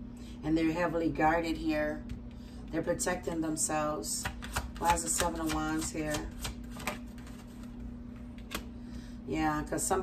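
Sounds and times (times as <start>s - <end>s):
cards being shuffled: 4.2s - 8.7s.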